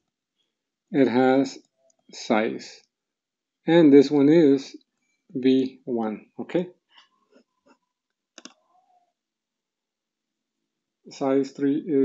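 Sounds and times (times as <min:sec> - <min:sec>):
computer mouse clicks: 0:08.4 - 0:08.6.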